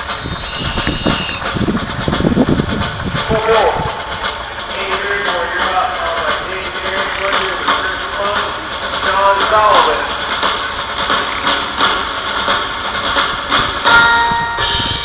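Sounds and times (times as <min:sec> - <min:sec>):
indistinct talking: 0:00.0 - 0:14.0
outdoor background noise: 0:00.0 - 0:15.0
scattered clicks: 0:04.2 - 0:09.2, 0:11.0 - 0:12.6.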